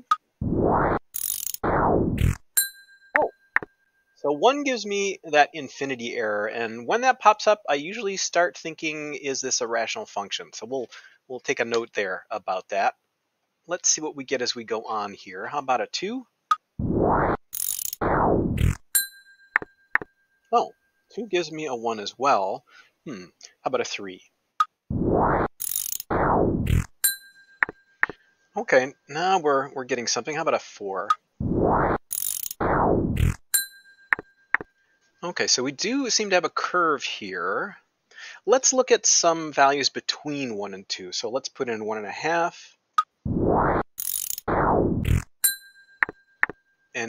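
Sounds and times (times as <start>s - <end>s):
ratcheting gear-like grinding: 0.8s - 2.6s, 17.1s - 19.0s, 25.2s - 27.8s, 31.7s - 33.7s, 43.6s - 46.2s
computer clicks: 1.1s - 1.6s, 32.1s - 32.6s, 44.0s - 45.3s
whooshes: 16.8s - 17.4s
steady chime-like tone: 33.6s - 34.6s.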